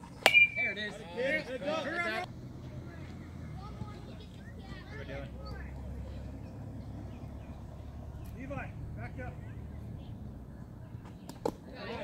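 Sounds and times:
distant voices chattering: 0.0 - 12.0.

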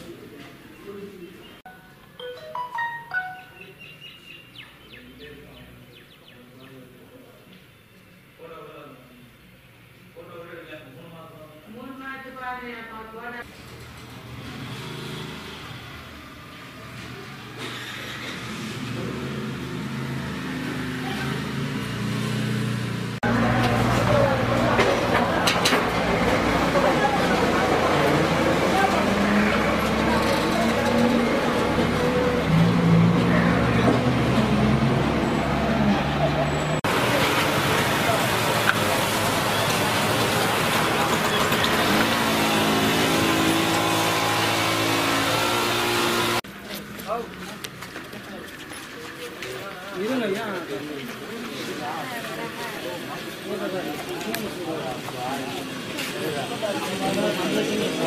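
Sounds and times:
voices: 23.2 - 43.8, 46.5 - 58.0.

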